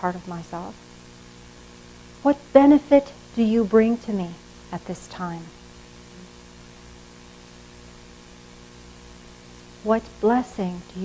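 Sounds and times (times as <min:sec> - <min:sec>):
electrical hum: 0:00.0 - 0:11.0
faint hiss: 0:00.0 - 0:11.0.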